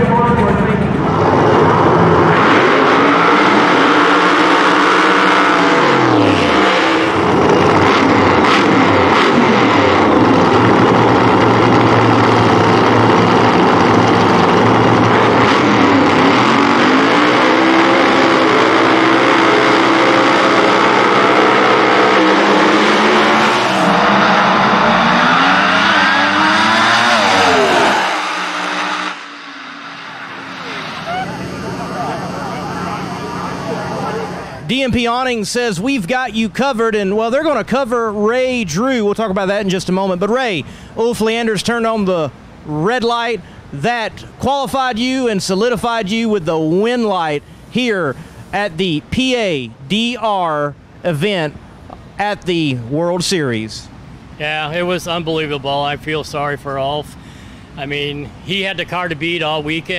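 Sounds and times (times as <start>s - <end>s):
drag racing engines revving: 0.0s - 52.9s, 53.7s - 59.9s.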